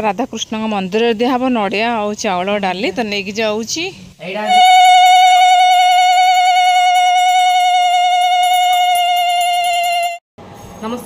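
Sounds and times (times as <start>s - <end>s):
conch shell blown: 4.2s - 10.2s.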